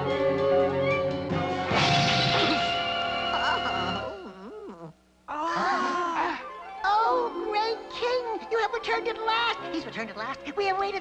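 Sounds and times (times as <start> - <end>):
loud crash: 1.4 - 3.1.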